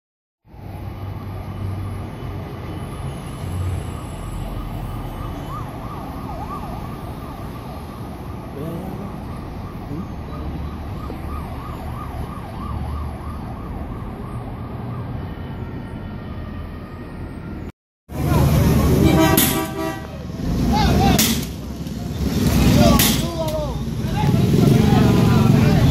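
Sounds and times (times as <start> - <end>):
city noise rumble: 0.4 - 25.9
distant emergency siren wailing: 0.6 - 17.7.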